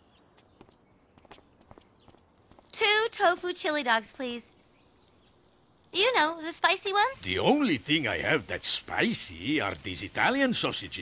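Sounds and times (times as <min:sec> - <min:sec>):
footsteps walking: 0:00.3 - 0:04.4.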